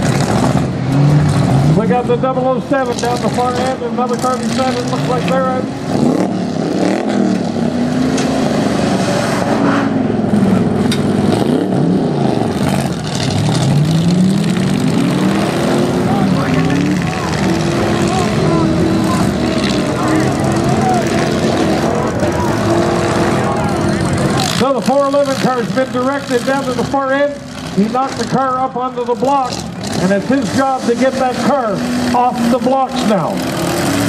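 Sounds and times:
car engines revving: 0.0s - 34.0s.

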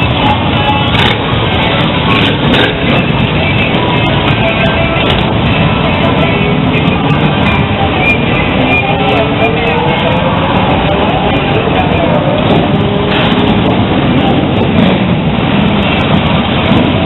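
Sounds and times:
background voices: 0.0s - 17.0s
music playing: 0.0s - 17.0s
traffic noise: 0.0s - 17.0s.

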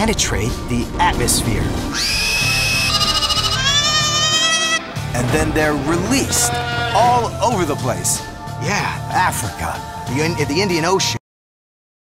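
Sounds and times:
background music: 0.0s - 11.2s
lamb bleating: 1.9s - 4.9s, 6.2s - 7.3s.

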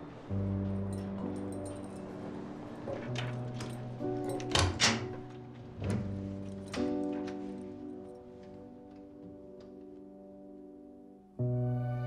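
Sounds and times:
low sustained music: 0.0s - 12.0s
keys jingling: 0.8s - 5.4s, 6.0s - 8.8s
key clacking in door lock: 2.9s - 7.4s.

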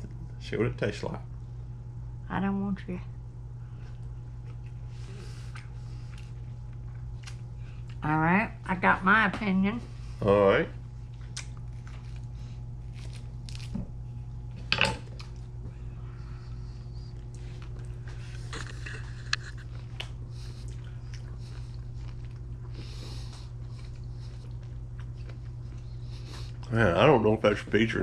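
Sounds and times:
low electrical hum: 0.0s - 28.0s
person chewing fruit: 3.7s - 8.0s, 11.0s - 15.7s, 16.5s - 26.8s.

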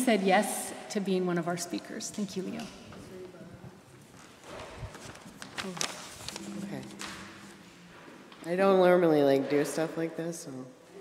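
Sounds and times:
footsteps and shuffling: 2.4s - 8.4s.

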